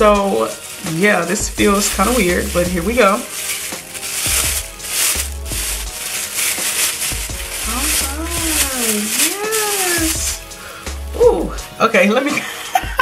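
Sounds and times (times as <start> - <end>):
plastic bag crinkling: 0.0 - 12.0.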